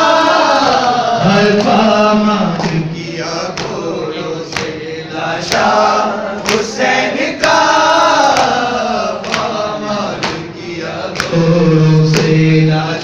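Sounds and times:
men chanting a lament: 0.0s - 13.0s.

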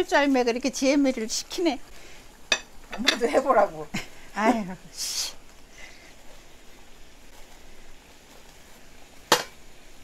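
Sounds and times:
water boiling in a pot: 0.0s - 10.0s.

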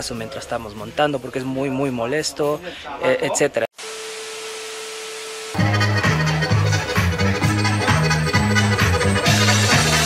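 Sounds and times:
music with heavy bassline: 5.6s - 10.0s.

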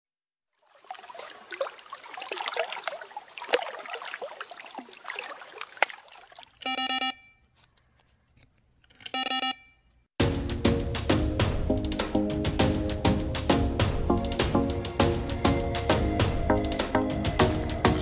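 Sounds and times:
short electronic beeps: 6.6s - 7.5s, 9.0s - 9.8s.

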